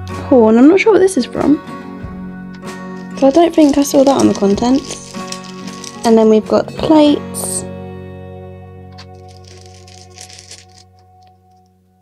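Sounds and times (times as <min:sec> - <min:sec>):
background music with held notes: 0:00.0 - 0:12.0
plastic bag crinkling: 0:02.9 - 0:06.4, 0:09.0 - 0:11.3.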